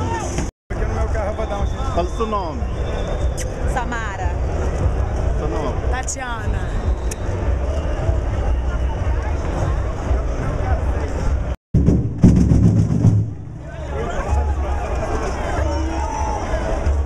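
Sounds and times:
crowd talking and shouting: 0.0s - 11.6s, 13.0s - 17.0s.

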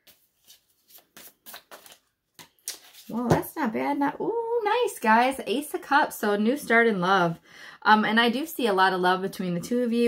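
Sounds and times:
cards flicking and sliding: 0.0s - 3.2s.

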